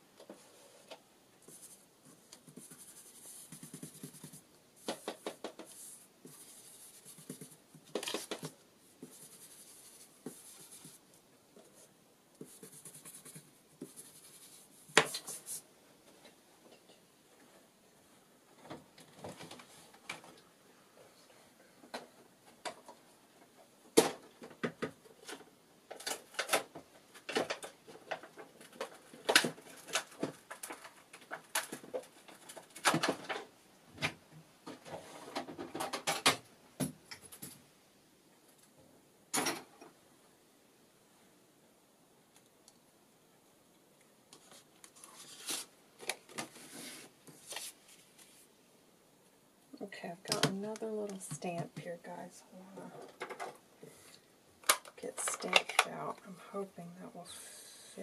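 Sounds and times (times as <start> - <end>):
paper and tools handled on table: 0.2 - 11.0, 44.3 - 48.5.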